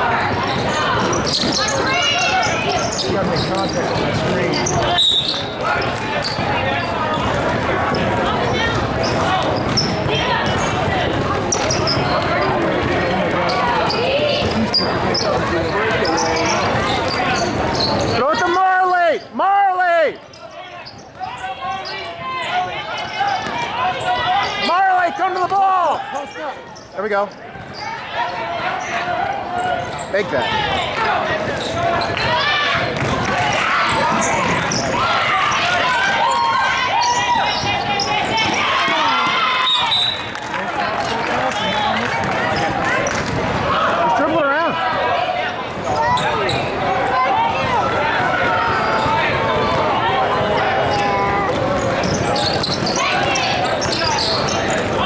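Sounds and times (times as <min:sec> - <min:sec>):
people shouting and calling out: 0:00.0 - 0:55.0
ball bouncing on court: 0:07.2 - 0:13.1, 0:31.4 - 0:35.0, 0:37.5 - 0:40.6, 0:42.0 - 0:43.8, 0:50.8 - 0:55.0.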